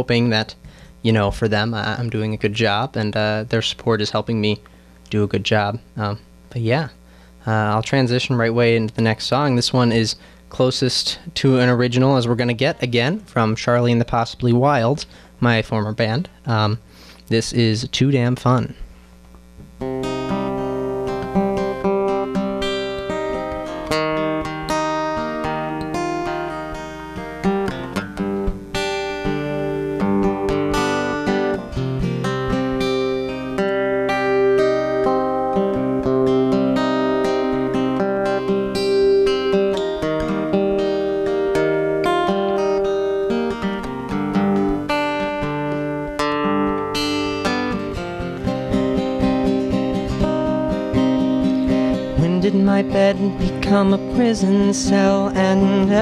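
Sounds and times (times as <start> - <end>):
acoustic guitar playing: 19.5 - 56.0.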